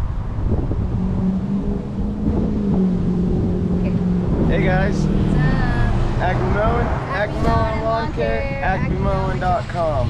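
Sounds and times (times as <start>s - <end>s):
engine hum: 0.0s - 10.0s
wind buffeting microphone: 0.0s - 10.0s.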